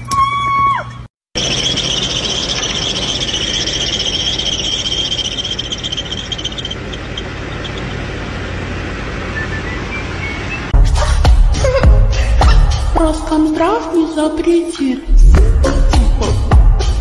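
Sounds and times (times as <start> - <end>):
car engine running: 1.4 - 10.7
drive belt squealing: 1.4 - 10.7.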